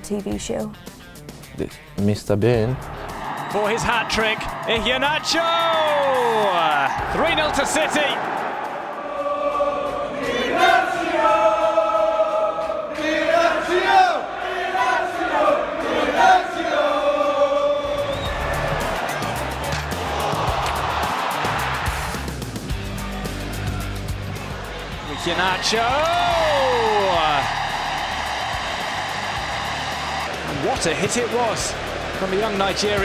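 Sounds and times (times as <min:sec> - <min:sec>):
crowd noise: 0:13.0 - 0:33.0
music with steady beat: 0:18.2 - 0:33.0.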